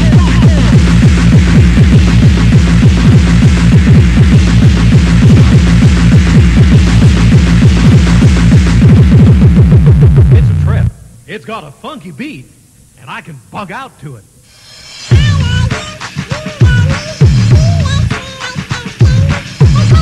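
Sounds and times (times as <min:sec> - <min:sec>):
kick-drum beat: 0:00.0 - 0:10.8, 0:15.1 - 0:20.0.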